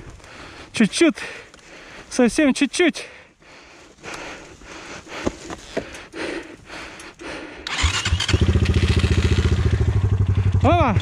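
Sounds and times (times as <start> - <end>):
motorcycle engine starting and running: 7.6 - 11.0.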